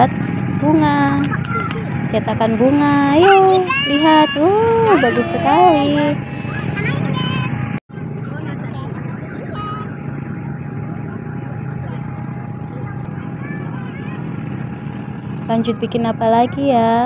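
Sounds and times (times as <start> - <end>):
steady mechanical hum: 0.0 - 17.0
faint distant voices: 3.0 - 17.0.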